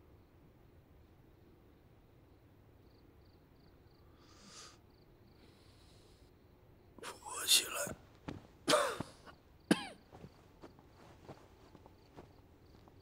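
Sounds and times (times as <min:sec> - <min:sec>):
man coughing hoarsely: 0:08.7 - 0:10.0.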